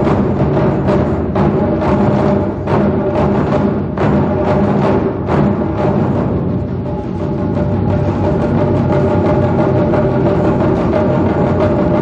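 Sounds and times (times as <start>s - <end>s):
taiko drum ensemble playing: 0.0s - 12.0s.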